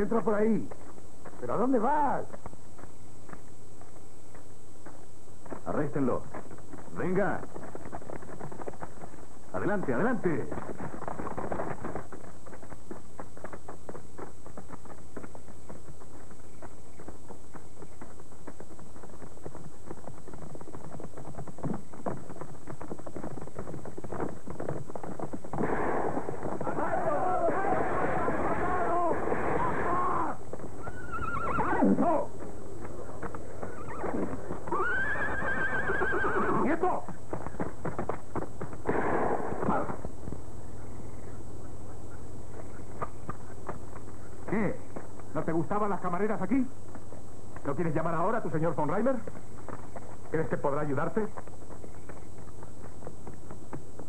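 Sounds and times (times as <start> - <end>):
hoofbeats and scuffling: 0.0 - 54.0
horses whinnying: 25.8 - 32.3, 33.0 - 37.2
steady hum: 36.8 - 54.0.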